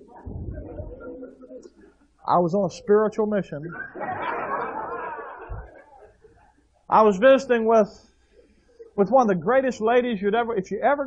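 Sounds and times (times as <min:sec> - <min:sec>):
audience laughing and murmuring: 0:00.0 - 0:06.7
low thump: 0:00.2 - 0:01.0.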